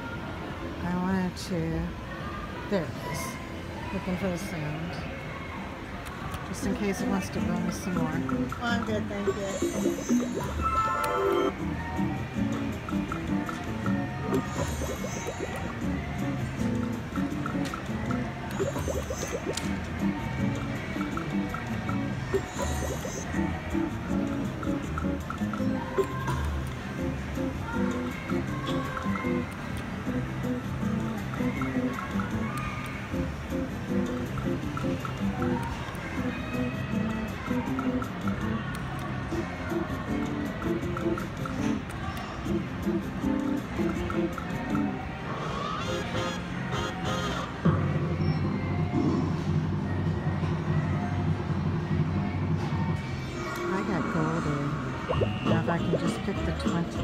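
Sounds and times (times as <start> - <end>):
electronic slot machine music: 7.9 - 26.1.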